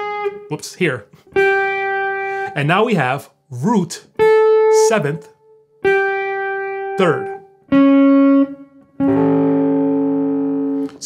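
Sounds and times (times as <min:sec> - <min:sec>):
electric guitar chord ringing: 0:00.0 - 0:00.5, 0:01.2 - 0:03.1, 0:04.1 - 0:11.0.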